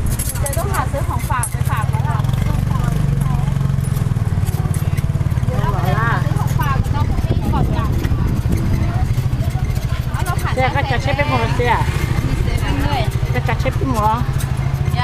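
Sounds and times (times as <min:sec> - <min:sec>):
small motorcycle engine chugging: 0:00.0 - 0:15.0
people talking: 0:00.3 - 0:03.7, 0:04.3 - 0:15.0.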